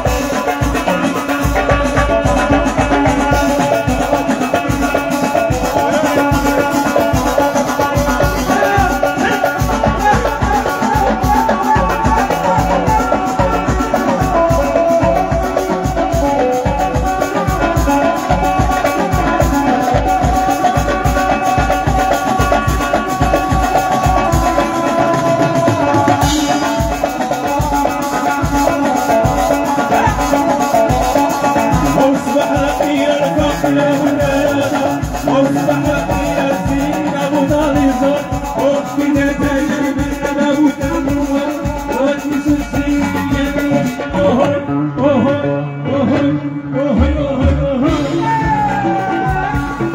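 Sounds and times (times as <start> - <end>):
shaken percussion: 0.0 - 44.1
drum kit beat: 0.0 - 49.9
keyboard melody: 0.0 - 49.9
live band playing: 0.0 - 49.9.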